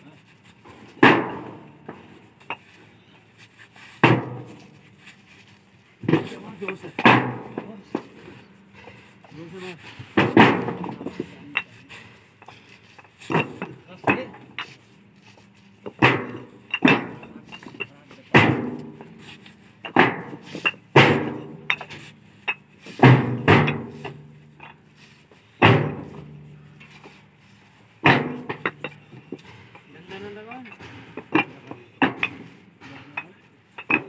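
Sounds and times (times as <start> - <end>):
bricks clinking onto a stack: 15.8 - 24.8, 28.0 - 34.0.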